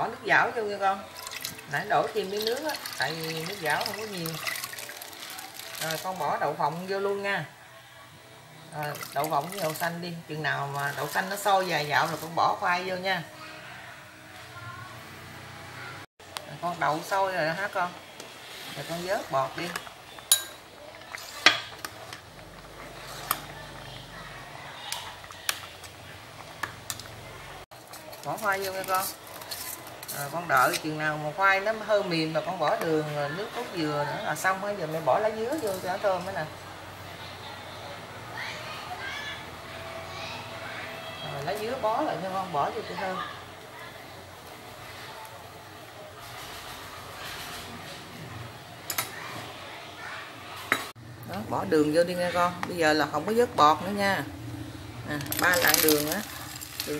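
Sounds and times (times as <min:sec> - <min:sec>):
soup boiling hiss: 0:00.2 - 0:07.6, 0:08.5 - 0:13.3, 0:16.3 - 0:36.8
metal ladle clinking on pot: 0:19.6 - 0:21.9.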